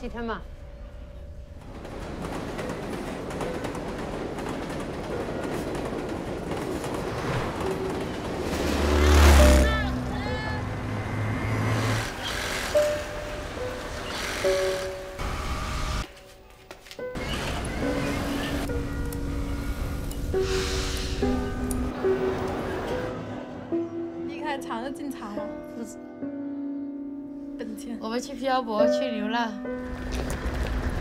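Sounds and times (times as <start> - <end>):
moving train rushing: 0.5 - 16.1, 17.2 - 25.0, 29.8 - 31.0.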